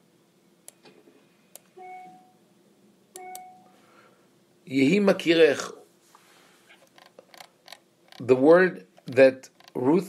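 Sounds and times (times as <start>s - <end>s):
short electronic beeps: 1.8s - 2.4s, 3.2s - 3.7s.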